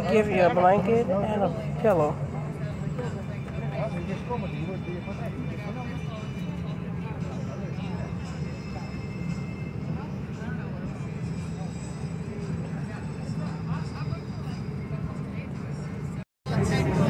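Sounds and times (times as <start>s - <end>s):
airliner cabin hum: 0.0s - 17.0s
faint passengers talking: 0.0s - 17.0s.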